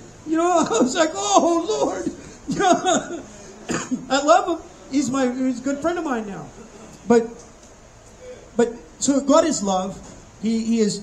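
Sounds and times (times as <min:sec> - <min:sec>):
man's voice through microphone: 0:00.2 - 0:07.4, 0:08.6 - 0:11.0
cough-like burst: 0:02.2 - 0:04.1.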